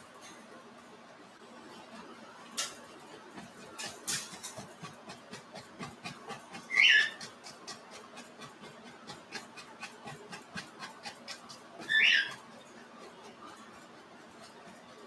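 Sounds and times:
brush tapping on canvas: 3.4 - 14.8.

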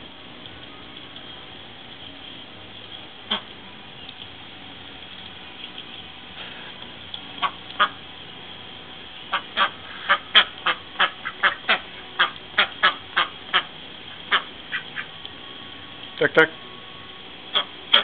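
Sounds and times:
ducks quacking: 3.3 - 3.5, 7.4 - 8.0, 9.3 - 15.2, 17.5 - 18.0.

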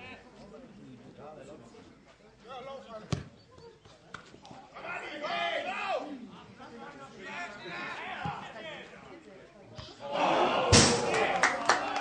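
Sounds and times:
football kicked thump: 3.1 - 3.3.

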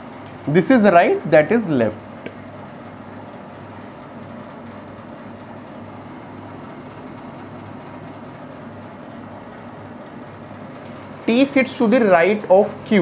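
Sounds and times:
low even room hum: 0.0 - 13.0.

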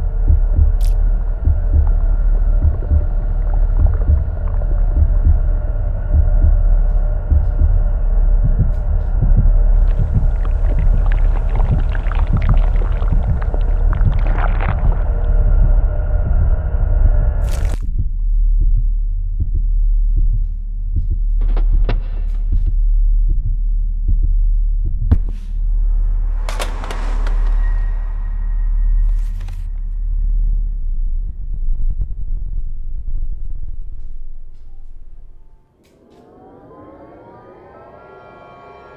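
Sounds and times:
dense noisy layer: 0.0 - 17.8
low throbbing drone: 0.0 - 38.9
swell of noise: 35.7 - 38.9.

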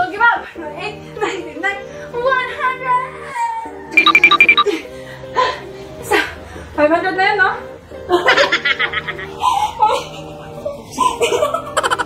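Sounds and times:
background music: 0.0 - 12.0
short electronic beeps: 4.0 - 4.7.

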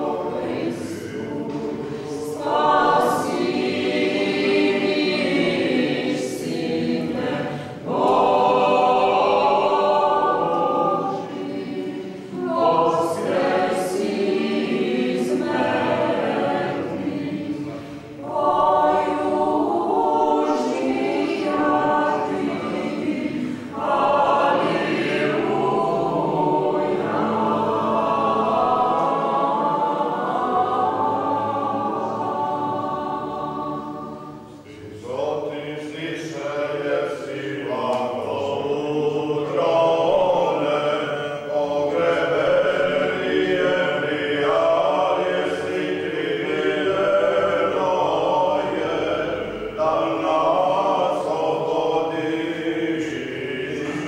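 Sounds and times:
choir singing unaccompanied: 0.0 - 54.0.

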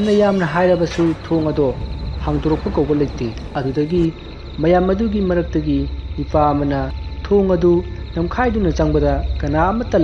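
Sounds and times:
person narrating: 0.0 - 10.0
steady low hum: 0.0 - 10.0.

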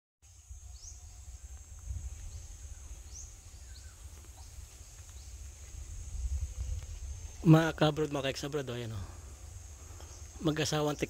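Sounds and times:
insect drone: 0.2 - 11.0
bird chirps: 2.2 - 5.6.

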